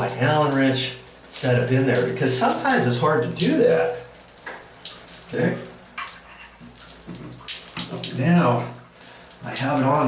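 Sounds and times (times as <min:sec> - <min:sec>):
water splashing in shower: 0:00.0 - 0:10.0.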